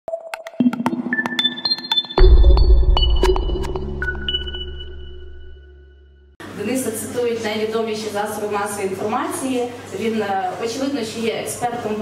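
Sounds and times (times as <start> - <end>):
high pinging notes: 0.4 - 6.3
deep bass boom: 2.2 - 5.8.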